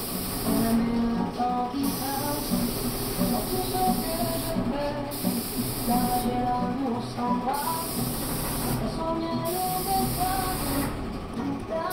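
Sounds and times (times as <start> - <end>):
paint spray gun hissing: 0.0 - 11.1.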